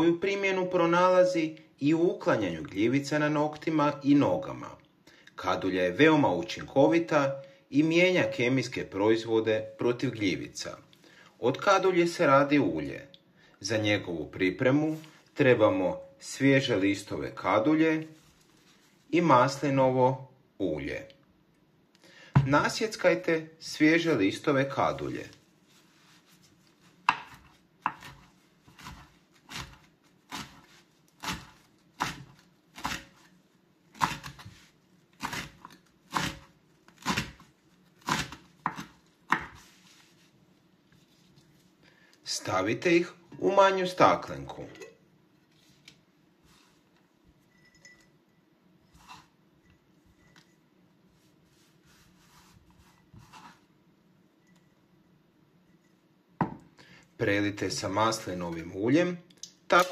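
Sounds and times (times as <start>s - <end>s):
knife chopping on wooden board: 27.0s - 33.2s, 34.0s - 34.4s, 38.0s - 39.6s.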